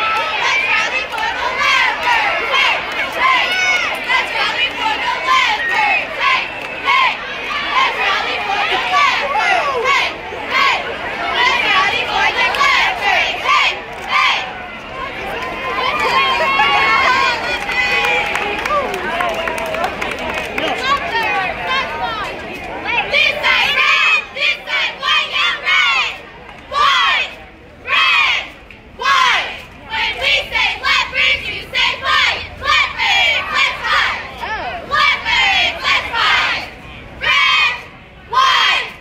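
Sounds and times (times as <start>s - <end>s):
cheerleaders yelling in unison: 0.0s - 19.0s, 22.9s - 39.0s
crowd shouting and cheering: 0.0s - 39.0s.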